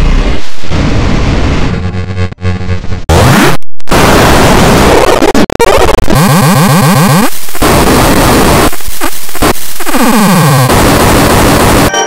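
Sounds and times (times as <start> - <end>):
harsh distorted noise: 0.0 - 12.0.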